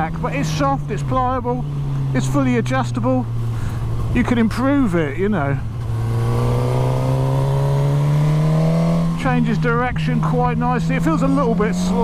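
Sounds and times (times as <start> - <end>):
motorcycle engine revving up: 5.8 - 9.4, 10.8 - 12.0.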